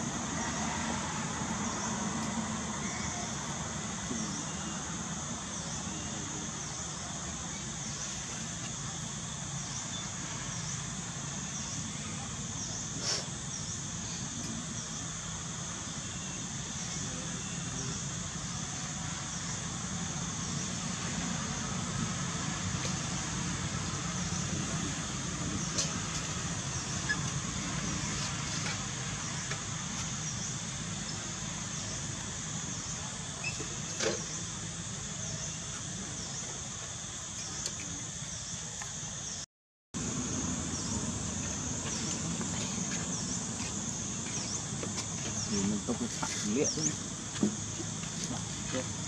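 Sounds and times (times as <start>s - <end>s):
high insect drone: 0.0s - 39.4s, 40.0s - 49.0s.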